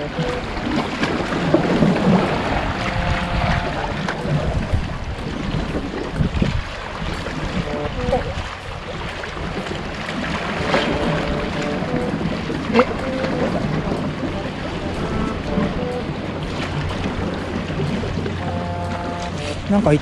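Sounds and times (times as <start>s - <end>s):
sea water lapping on concrete: 0.0s - 20.0s
quiet background music: 10.3s - 20.0s.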